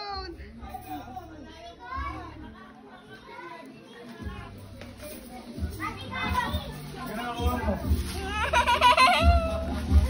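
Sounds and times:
background music: 0.0 - 10.0
chatter with children's voices: 0.0 - 10.0.

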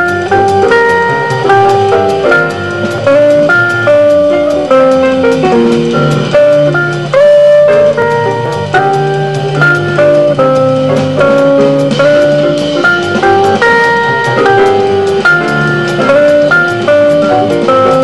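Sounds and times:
cymbal beat: 0.0 - 18.0
double bass: 0.0 - 18.0
guitar: 0.0 - 18.0
piano: 0.0 - 18.0.

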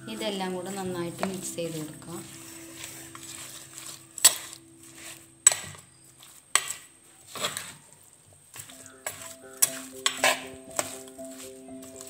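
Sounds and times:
background music: 0.0 - 5.9, 8.6 - 12.0
spoon scraping in a pot: 0.1 - 7.9, 8.6 - 12.0
spoon clinking against pot: 2.2 - 5.8, 8.6 - 12.0.

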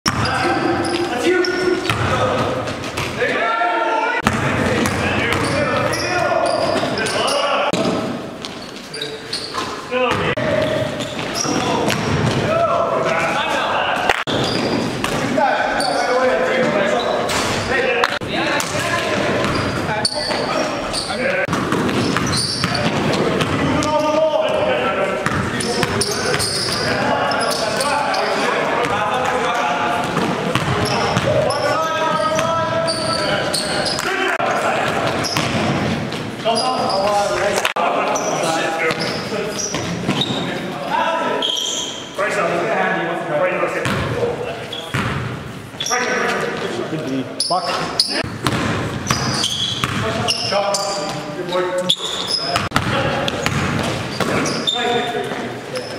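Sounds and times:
basketball bouncing on hardwood floor: 48.3 - 50.0.

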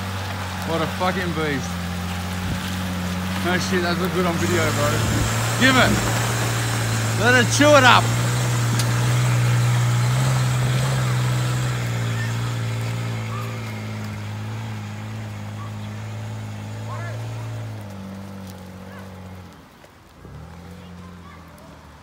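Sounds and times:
vehicle engine under load: 0.0 - 22.0.

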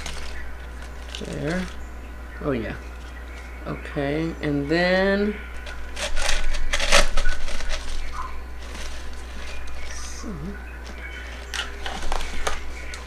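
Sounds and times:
leaves rustling and crackling: 0.0 - 4.4, 5.3 - 13.0.

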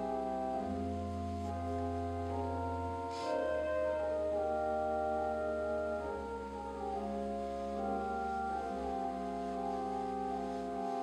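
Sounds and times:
organ chords: 0.0 - 11.0.

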